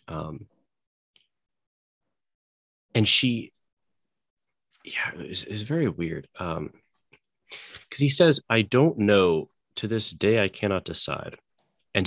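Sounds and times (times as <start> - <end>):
man speaking: 0.0 - 0.4, 3.0 - 3.5, 4.9 - 6.8, 7.6 - 11.4.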